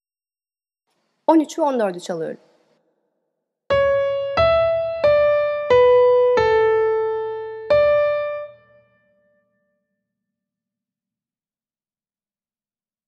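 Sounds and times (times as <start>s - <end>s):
piano single-line melody: 3.7s - 9.4s.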